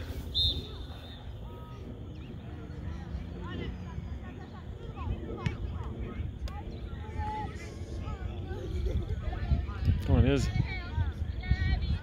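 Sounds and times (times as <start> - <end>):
distant voices: 0.0 - 12.0
wind rumbling on microphone: 0.0 - 12.0.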